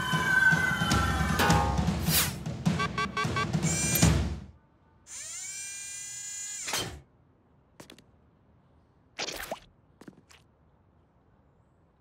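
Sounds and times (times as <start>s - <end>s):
cartoon music with drums: 0.0s - 4.5s.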